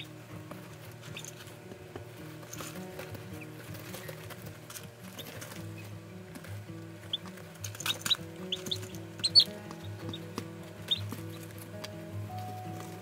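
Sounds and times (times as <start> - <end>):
chicks peeping: 0.0 - 1.5, 5.1 - 11.7
background music: 0.0 - 13.0.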